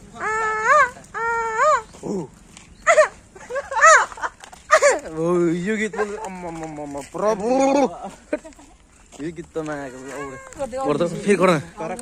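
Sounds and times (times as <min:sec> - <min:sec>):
animal high-pitched cries: 0:00.1 - 0:03.2, 0:09.9 - 0:10.6.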